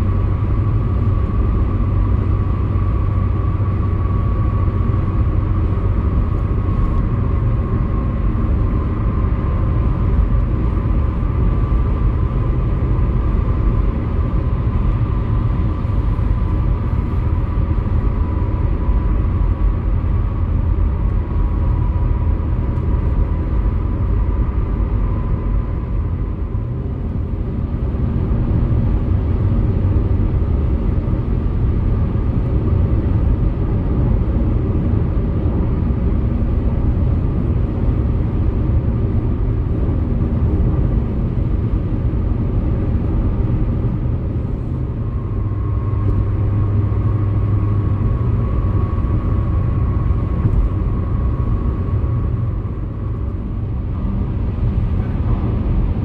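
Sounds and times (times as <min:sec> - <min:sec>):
tyre and road noise: 0:00.0 - 0:56.0.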